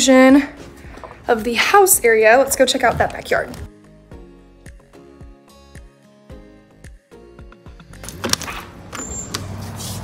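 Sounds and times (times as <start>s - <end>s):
door lock and handle clicking: 8.0s - 9.5s.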